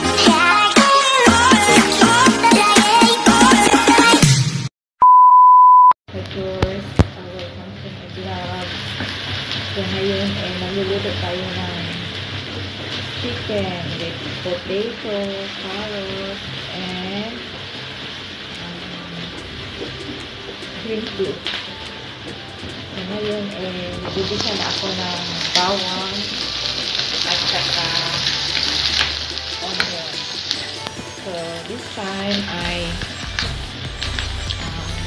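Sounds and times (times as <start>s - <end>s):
test tone beep: 5.0s - 6.0s
woman speaking: 6.2s - 8.8s, 9.8s - 12.1s, 13.2s - 17.5s, 18.6s - 19.4s, 20.8s - 21.5s, 23.0s - 26.4s, 27.2s - 28.4s, 29.6s - 30.3s, 31.2s - 33.0s
oil sizzling in a frying pan: 6.8s - 35.0s.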